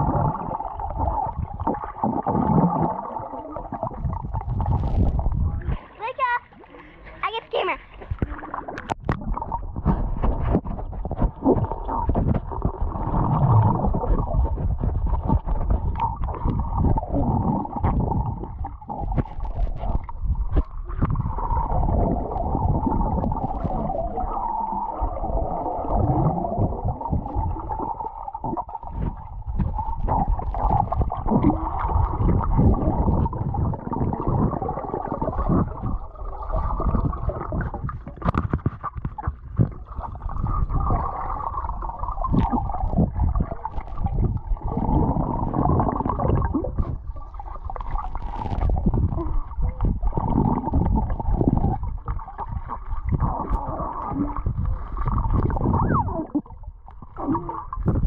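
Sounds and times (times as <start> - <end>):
muffled underwater churning: 0.0 - 58.0.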